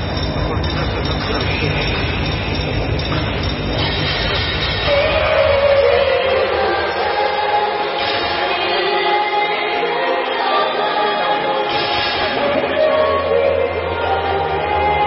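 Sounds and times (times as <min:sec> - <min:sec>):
heavy bass beat: 0:00.0 - 0:07.0
dance music over loudspeakers: 0:00.0 - 0:15.0.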